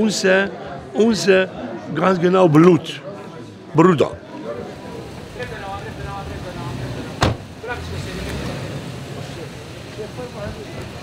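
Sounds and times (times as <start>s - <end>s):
vehicle driving slowly by: 4.7s - 11.0s.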